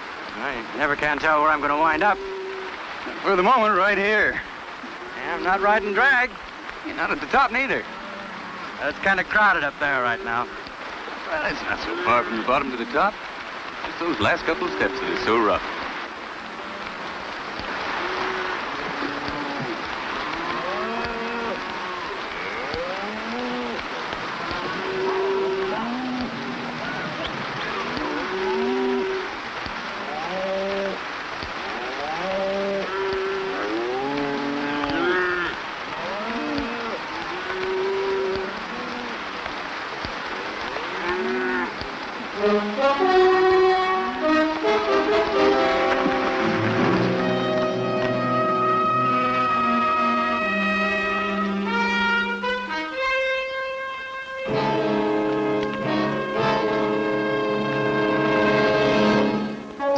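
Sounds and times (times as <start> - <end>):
cattle mooing: 24.4 - 29.3, 31.8 - 39.2, 40.8 - 41.7, 47.2 - 52.8
music: 42.4 - 59.9.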